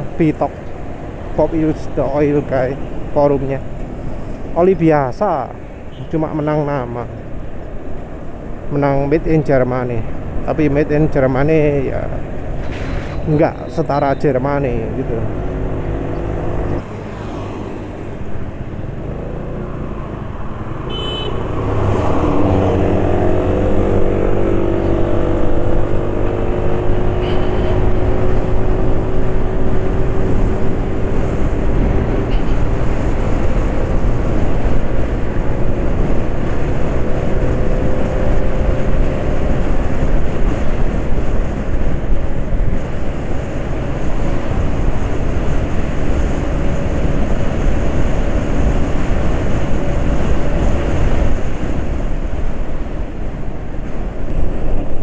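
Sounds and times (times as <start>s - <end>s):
road and wind noise: 0.0s - 55.0s.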